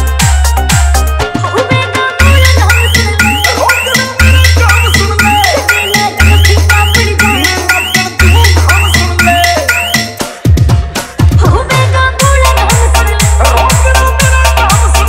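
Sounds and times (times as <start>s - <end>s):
fast percussion hits: 2.1s - 15.0s.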